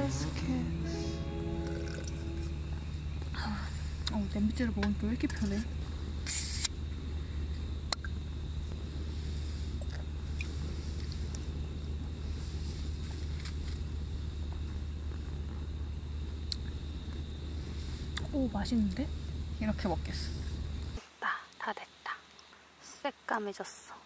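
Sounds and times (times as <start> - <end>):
gas stove humming: 0.0 - 21.0
short hissing rustle: 6.2 - 6.8, 9.0 - 11.6, 12.2 - 13.8, 17.5 - 18.3.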